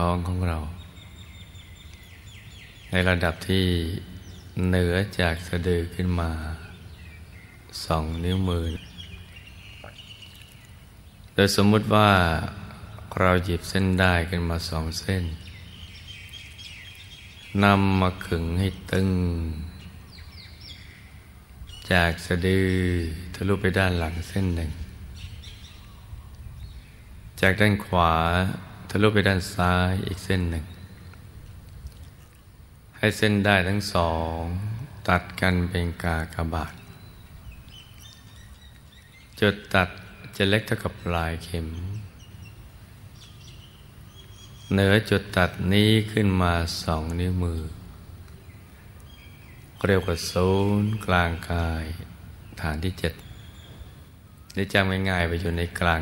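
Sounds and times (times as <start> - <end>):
low background hiss: 0.0 - 56.0
outdoor background hum: 0.0 - 56.0
man speaking: 7.8 - 8.8, 11.4 - 15.4, 17.6 - 19.7, 21.9 - 24.9, 27.4 - 30.8, 33.0 - 36.8, 39.4 - 42.1, 44.7 - 47.9, 49.8 - 53.2, 54.5 - 56.0.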